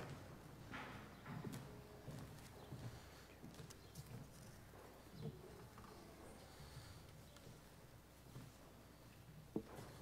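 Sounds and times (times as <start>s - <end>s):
faint footsteps: 0.0s - 10.0s.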